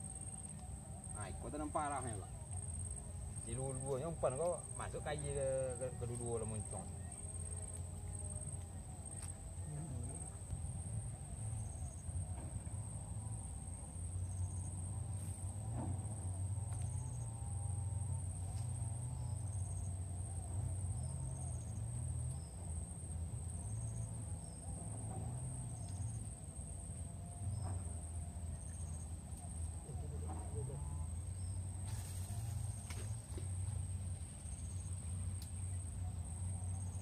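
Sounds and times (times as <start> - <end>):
insects droning: 0.0 - 37.0.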